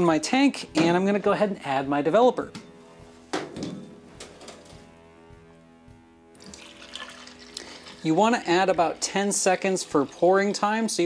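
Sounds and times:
soft background music: 0.0 - 11.0
liquid pouring into tank: 6.4 - 10.6.

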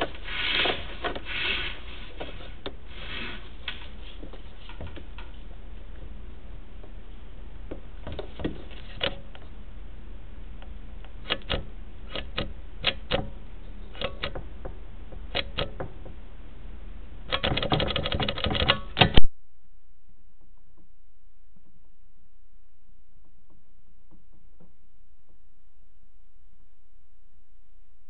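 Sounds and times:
steady equipment hum: 0.0 - 28.0
equipment clicks and knocks: 11.3 - 16.2.

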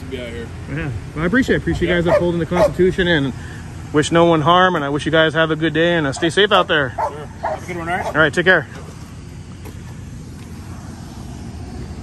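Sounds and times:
distant engine rumble: 0.0 - 12.0.

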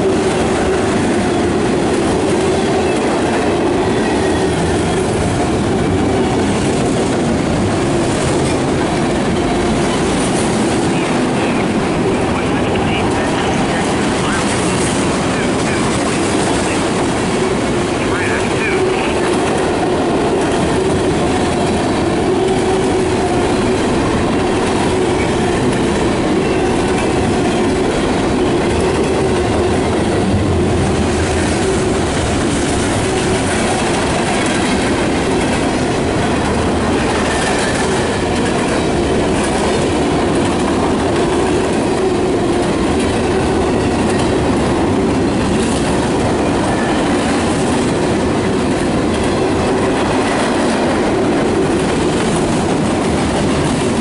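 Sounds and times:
freight train wheels clattering on rails: 0.0 - 54.0.

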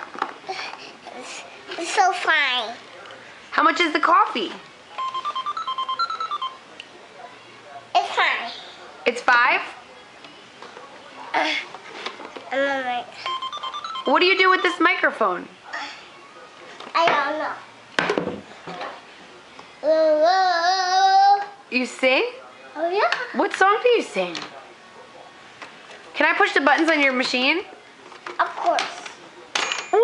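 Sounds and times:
toy cash register beeping tune: 5.0 - 6.6, 13.3 - 14.8
toddler vocal sounds: 19.8 - 21.6.

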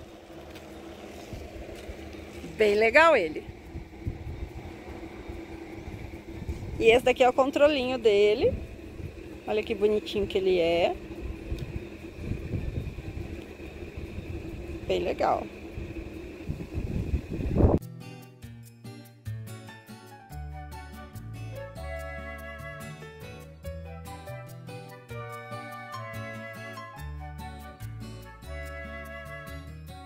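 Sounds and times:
faint steady hum: 0.0 - 17.8
wind buffeting microphone: 0.8 - 17.8
background music: 17.8 - 30.0.

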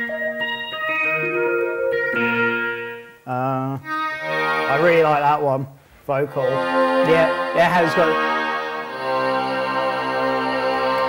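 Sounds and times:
synthesizer playing notes and chords: 0.0 - 3.3.

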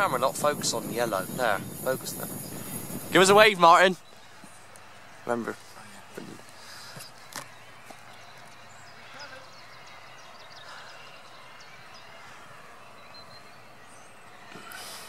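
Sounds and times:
outdoor background hiss: 0.0 - 15.0.

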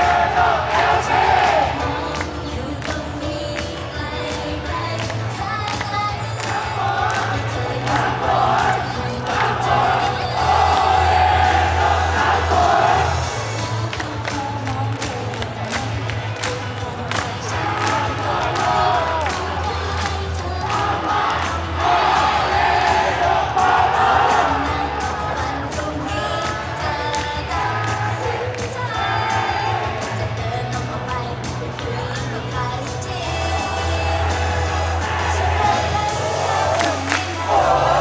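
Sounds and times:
crowd shouting chants: 0.0 - 1.8, 6.4 - 13.4, 20.6 - 25.4, 33.6 - 38.0
group singing into microphones: 0.0 - 38.0
pop song through loudspeakers: 0.0 - 38.0.

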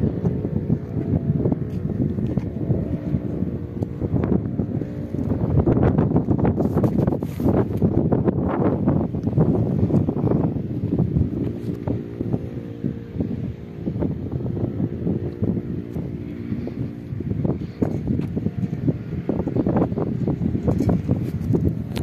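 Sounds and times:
engine-like hum: 0.0 - 22.0
wind buffeting microphone: 0.0 - 22.0.

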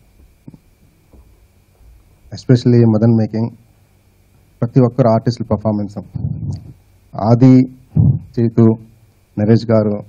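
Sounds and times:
microphone and pa hum: 0.0 - 10.0.

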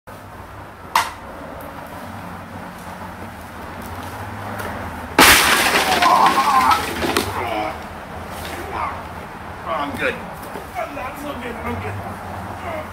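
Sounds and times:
plastic cups scattering: 5.2 - 7.4
plastic table crashing: 5.2 - 7.4.

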